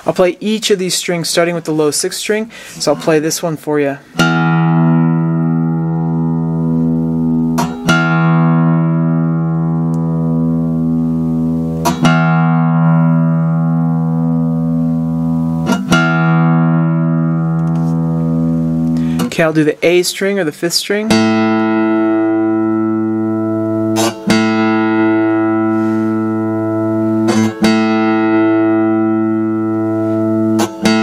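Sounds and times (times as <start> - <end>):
acoustic guitar string plucked: 4.1 - 20.0, 21.1 - 31.0.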